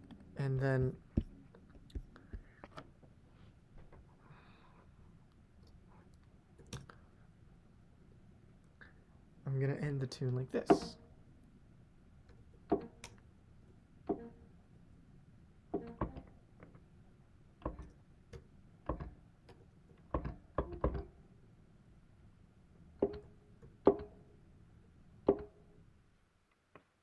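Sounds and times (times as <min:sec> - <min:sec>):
computer keys and mouse clicking: 0:17.6 - 0:21.1, 0:23.0 - 0:24.1.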